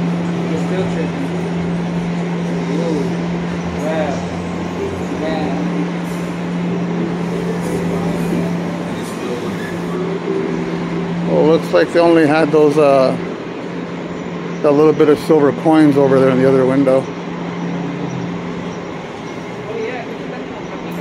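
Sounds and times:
distant indistinct voices: 0.0 - 21.0
steady low hum: 0.0 - 21.0.

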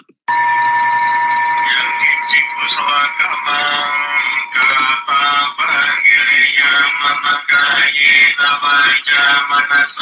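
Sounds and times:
high electronic tone: 0.3 - 6.8.

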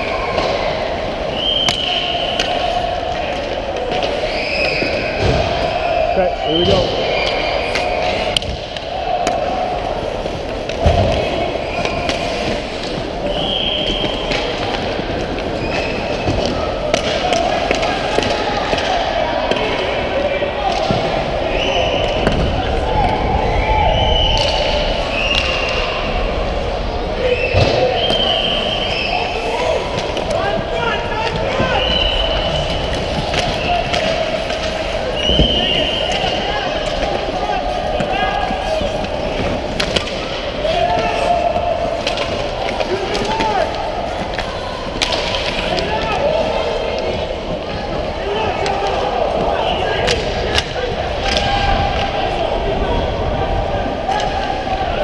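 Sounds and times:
hockey sticks and puck clacking: 0.0 - 5.7, 6.5 - 52.8, 53.5 - 55.0
shouting voices: 0.0 - 55.0
skates on ice: 6.8 - 23.6, 24.2 - 52.9.

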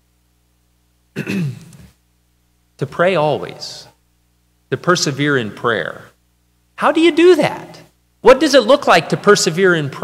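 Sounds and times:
man clearing throat: 1.2 - 2.0.

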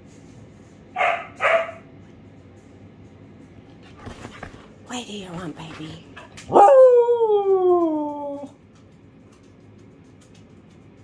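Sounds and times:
dog howling: 6.5 - 8.6.

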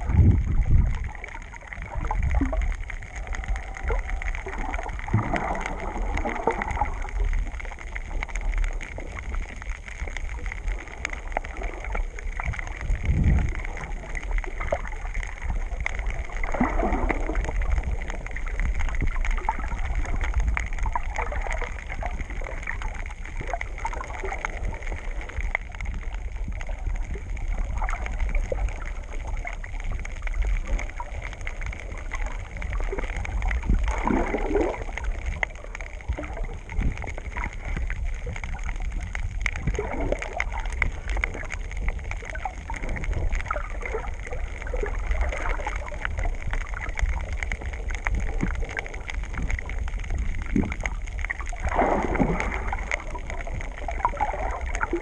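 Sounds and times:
low underwater rumble: 0.0 - 55.0
muffled underwater sloshing: 0.0 - 55.0.

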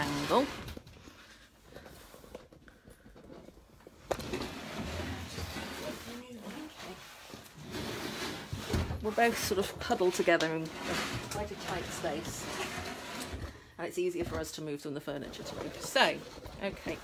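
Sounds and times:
rubbing and knocking on microphone: 14.2 - 17.0.

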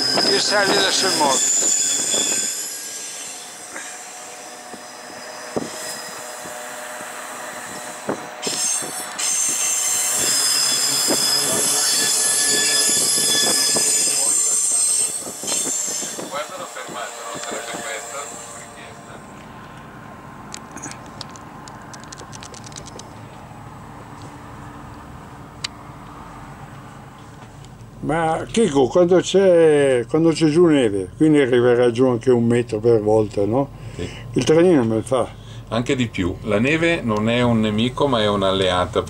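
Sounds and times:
train wheels squealing on rails: 0.0 - 19.4
train rumble: 0.0 - 29.4
train clicks: 20.5 - 23.2.

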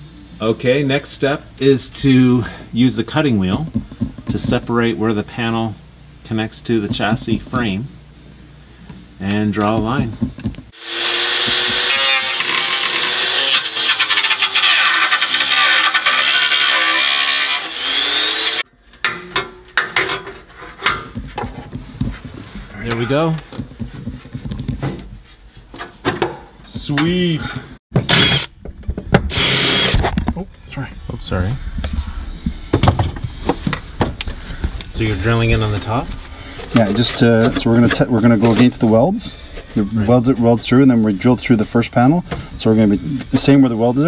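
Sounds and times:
cutting wheel grinding steel: 10.8 - 18.7, 28.0 - 28.5, 29.3 - 30.0
knocks and clunks of metal tools: 19.0 - 21.6.

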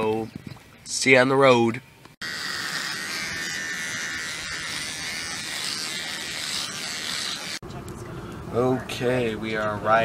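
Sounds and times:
electric hair clippers buzzing: 2.2 - 7.6.

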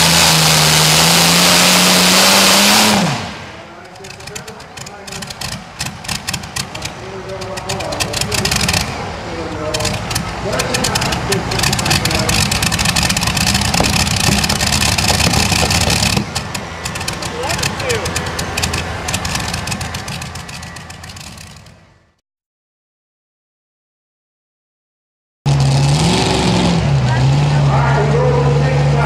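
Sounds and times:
tractor engine running rough: 0.0 - 22.2, 25.5 - 29.0.

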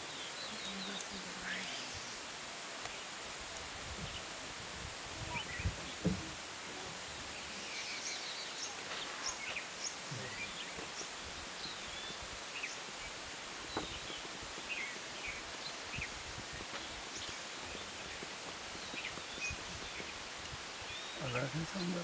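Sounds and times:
steady hiss: 0.0 - 22.0.

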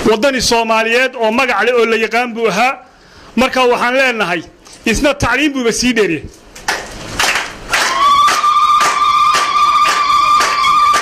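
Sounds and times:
crowd clapping in rhythm: 6.6 - 11.0
long high held tone: 7.8 - 11.0.

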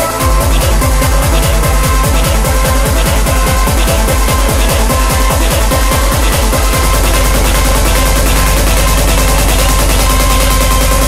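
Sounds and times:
hard dance electronic music: 0.0 - 11.0.

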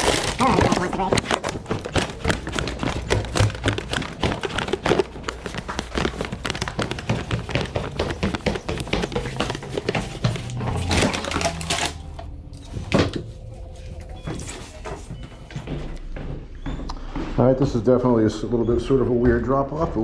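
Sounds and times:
paper bag rustling: 0.0 - 15.4
footsteps on indoor stairs: 0.1 - 11.6, 12.6 - 20.0.

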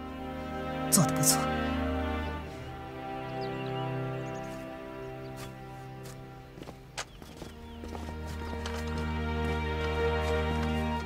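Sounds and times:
drama music of held notes: 0.0 - 11.0
light footsteps tapping: 4.3 - 11.0.

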